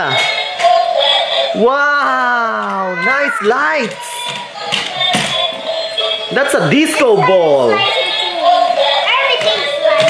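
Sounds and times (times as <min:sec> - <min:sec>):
toy electronic music: 0:00.0 - 0:01.6, 0:03.9 - 0:10.0
toy tapping on wooden floor: 0:03.8 - 0:05.6.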